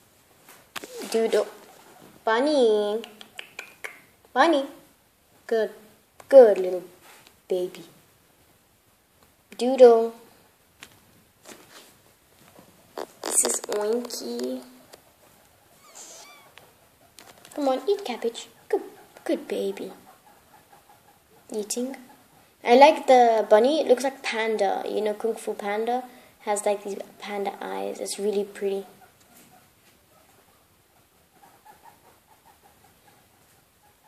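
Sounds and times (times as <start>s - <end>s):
guinea pig squeaking: 12.8s - 23.1s, 27.6s - 34.0s.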